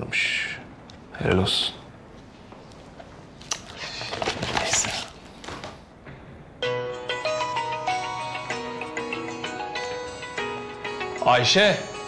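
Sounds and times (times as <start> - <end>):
folder pages rustling: 3.4 - 5.8.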